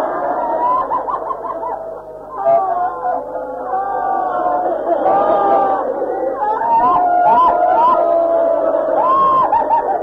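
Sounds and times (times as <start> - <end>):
crowd weeping and wailing: 0.0 - 10.0.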